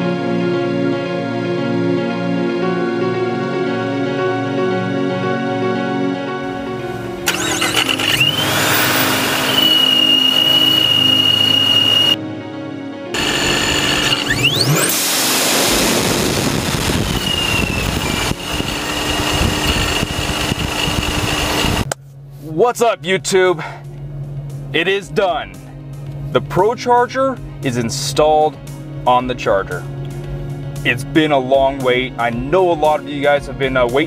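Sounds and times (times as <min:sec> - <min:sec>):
car engine running: 0:06.4 - 0:12.2, 0:13.2 - 0:26.6
supercharger whine: 0:06.4 - 0:12.2, 0:13.2 - 0:22.0
engine revving: 0:06.6 - 0:12.2, 0:13.1 - 0:21.9.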